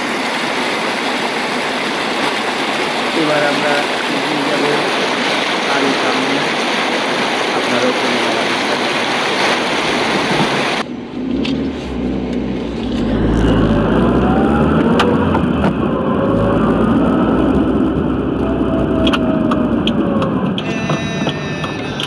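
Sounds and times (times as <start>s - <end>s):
vehicle engine rumbling: 0.0s - 22.0s
water rushing: 0.0s - 22.0s
higher held tones: 20.5s - 22.0s.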